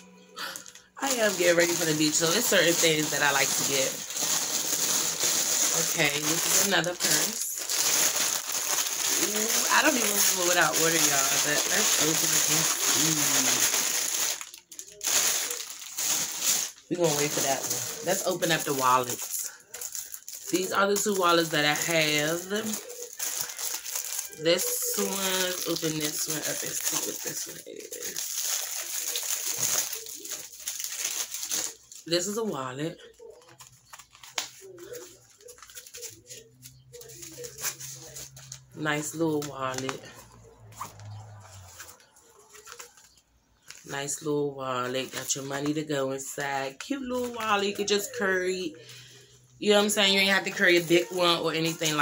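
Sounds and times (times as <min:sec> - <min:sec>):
plastic packaging rustling: 0:00.4 - 0:52.0
wallet clicks and rustles: 0:33.2 - 0:38.7.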